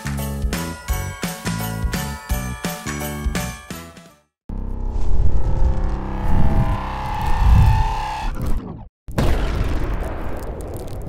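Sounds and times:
deep rumbling swell: 0:04.5 - 0:08.2
held tones rising: 0:04.5 - 0:08.4.

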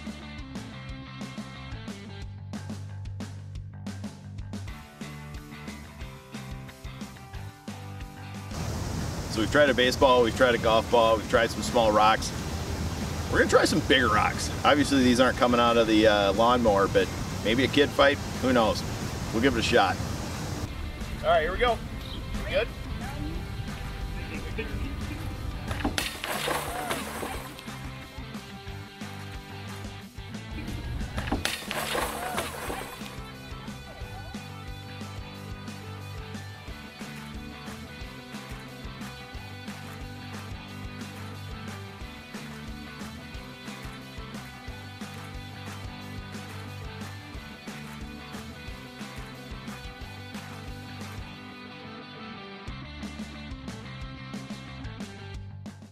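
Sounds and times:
background music with steady beat: 0:00.0 - 0:16.9, 0:20.6 - 0:55.9.

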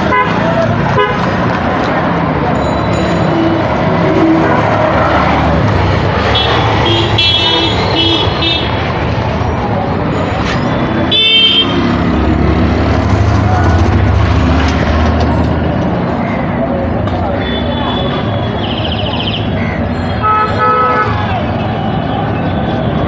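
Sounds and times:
engine rumbling: 0:00.0 - 0:18.4
vehicle horn toots: 0:20.2 - 0:21.2.

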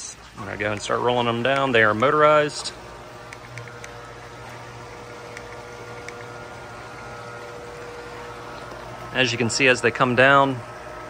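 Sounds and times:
electric motors humming: 0:00.0 - 0:11.0.

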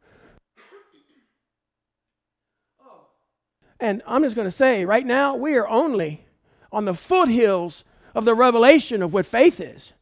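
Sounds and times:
man clearing throat: 0:00.6 - 0:01.4.

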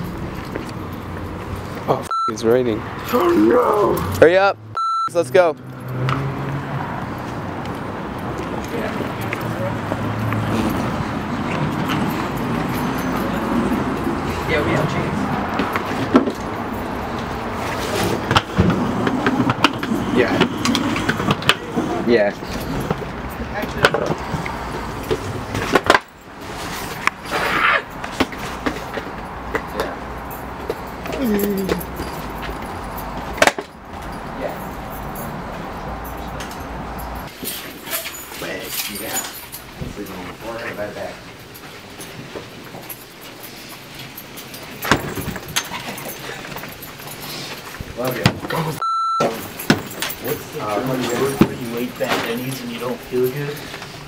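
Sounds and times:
outdoor background noise: 0:00.0 - 0:54.0
censor bleep: 0:02.1 - 0:02.4, 0:04.8 - 0:05.2, 0:48.8 - 0:49.4
luggage handling clicks and knocks: 0:44.1 - 0:48.7, 0:49.3 - 0:50.4.

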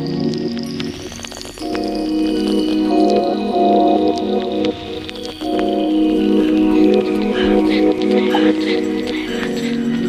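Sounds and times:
soft synthesizer chord: 0:01.6 - 0:10.0.

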